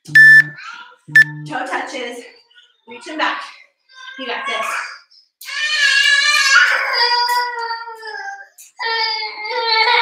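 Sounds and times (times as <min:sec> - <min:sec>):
toddler crying: 0:04.0 - 0:10.0.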